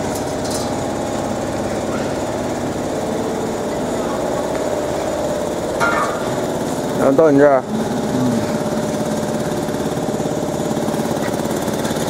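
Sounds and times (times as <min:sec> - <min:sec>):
laser cutter humming: 0:00.0 - 0:12.0.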